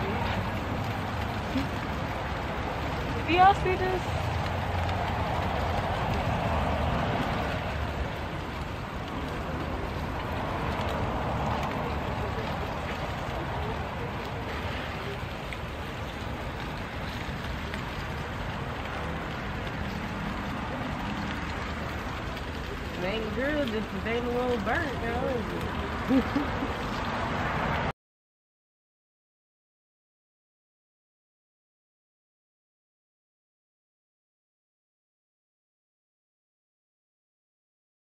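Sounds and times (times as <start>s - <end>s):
food sizzling on a grill: 0.0s - 27.6s
faint voices: 7.4s - 27.2s.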